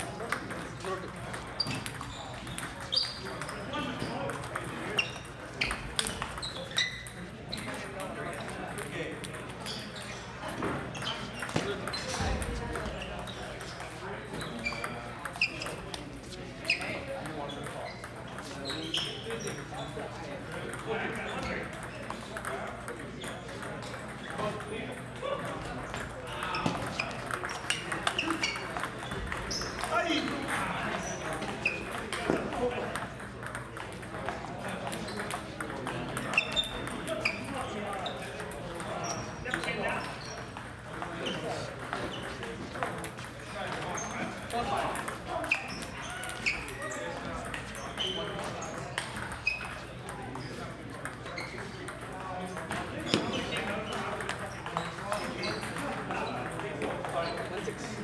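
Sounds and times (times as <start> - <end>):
background chatter: 0.0 - 58.0
table tennis balls clicking: 0.2 - 16.0, 20.4 - 58.0.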